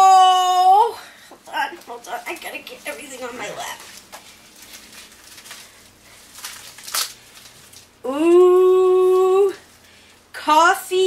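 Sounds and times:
plastic bag crinkling: 1.9 - 8.0.

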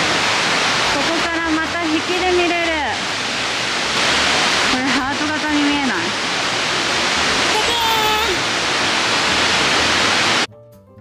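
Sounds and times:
waterfall rushing: 0.0 - 10.5.

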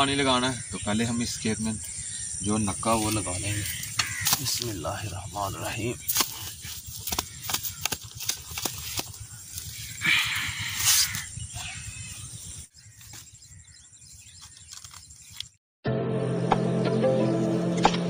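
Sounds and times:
hoe chopping into damp soil: 4.0 - 4.7, 6.1 - 9.2.

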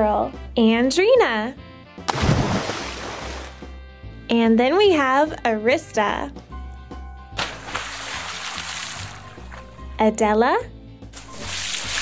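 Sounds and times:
light background music: 0.0 - 12.0
water splash: 2.1 - 3.6, 7.4 - 9.8, 11.2 - 12.0.

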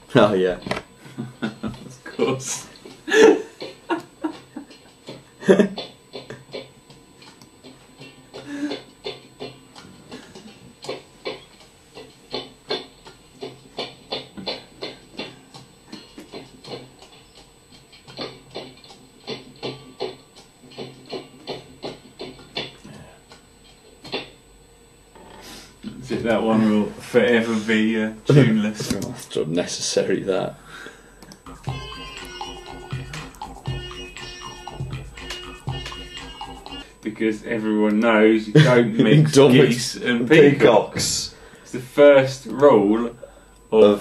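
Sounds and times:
person laughing: 1.0 - 6.4, 38.6 - 39.3
music track over speakers: 4.7 - 23.4, 31.4 - 37.0.

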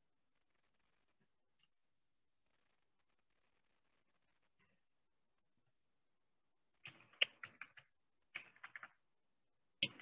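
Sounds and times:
computer keyboard typing: 6.8 - 9.0, 9.8 - 10.0.

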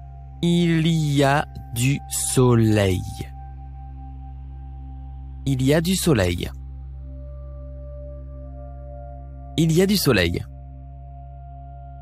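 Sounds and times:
ambient drone music: 0.0 - 12.0.

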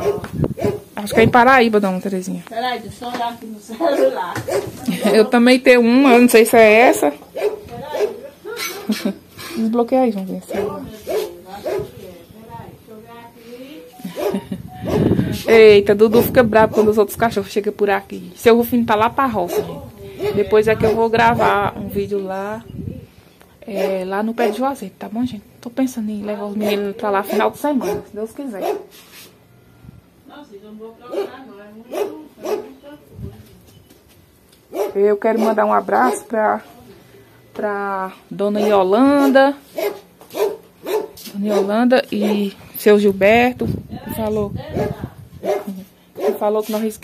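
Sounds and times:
dog barking: 0.0 - 1.3, 3.8 - 5.2, 7.4 - 8.3, 10.5 - 11.9, 14.1 - 15.1, 16.1 - 17.0, 19.4 - 21.6, 23.7 - 24.6, 26.6 - 28.9, 31.1 - 32.8, 34.7 - 36.3, 38.6 - 42.5, 44.8 - 46.4.

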